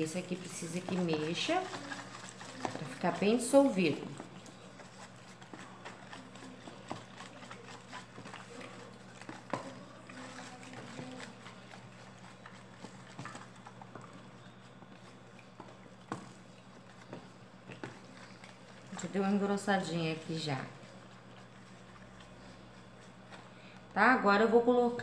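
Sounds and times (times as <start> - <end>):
spoon tapping and scraping plastic: 0.1 - 19.9.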